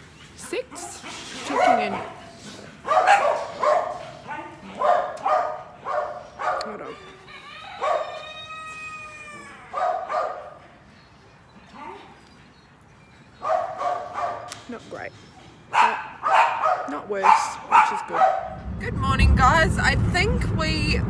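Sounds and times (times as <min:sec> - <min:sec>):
dog barking: 0:01.4 - 0:07.0, 0:07.8 - 0:08.3, 0:09.7 - 0:10.6, 0:13.4 - 0:14.5, 0:15.7 - 0:18.6
dog long drawn-out cry: 0:03.9 - 0:10.6.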